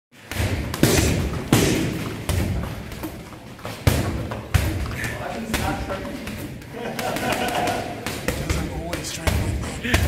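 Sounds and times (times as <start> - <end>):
punches thudding on heavy bag: 0.2 - 3.0, 3.8 - 5.8.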